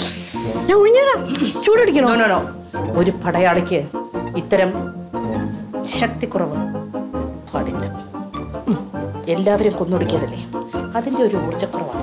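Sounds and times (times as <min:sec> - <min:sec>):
background music: 0:00.0 - 0:12.0
woman speaking: 0:00.7 - 0:04.8, 0:05.8 - 0:06.7, 0:09.2 - 0:12.0.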